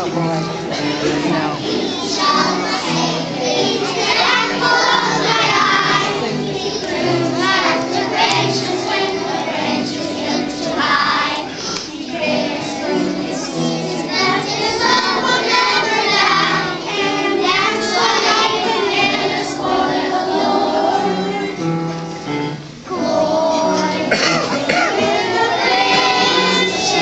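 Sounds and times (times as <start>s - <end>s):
children singing together: 0.0s - 27.0s.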